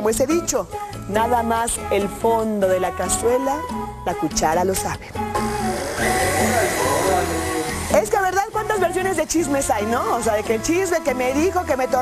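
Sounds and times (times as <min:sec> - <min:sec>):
music with repeating bass line: 0:05.2 - 0:09.6.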